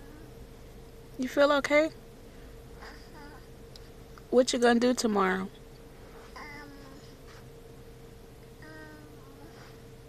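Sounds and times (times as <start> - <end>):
faint steady hum: 0.0 - 10.0
toddler humming: 2.8 - 3.5, 6.3 - 7.2, 8.6 - 9.7.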